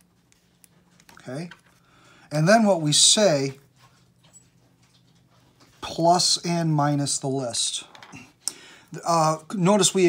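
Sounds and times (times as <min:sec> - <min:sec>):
man speaking: 0:02.3 - 0:03.6, 0:09.0 - 0:10.0.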